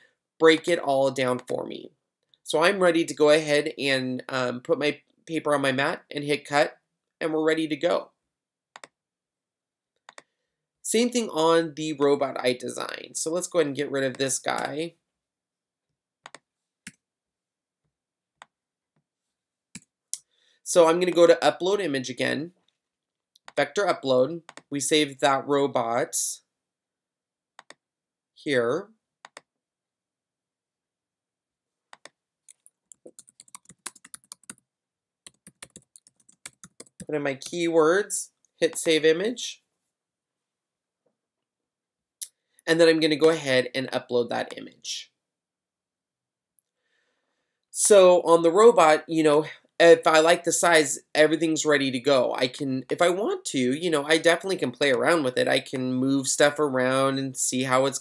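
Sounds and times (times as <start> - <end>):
computer mouse clicks: 8.8 - 9.0, 10.1 - 10.3, 16.2 - 17.0, 27.6 - 27.8, 29.2 - 29.5, 31.9 - 34.6, 35.2 - 37.1.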